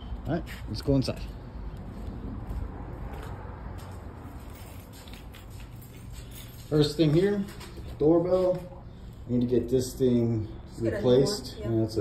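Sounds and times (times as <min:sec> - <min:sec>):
footsteps on concrete: 0:00.2 - 0:08.8.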